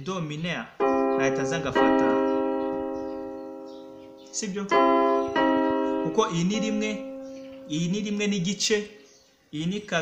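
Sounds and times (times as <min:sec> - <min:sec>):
keyboard piano chord: 0:00.8 - 0:08.3.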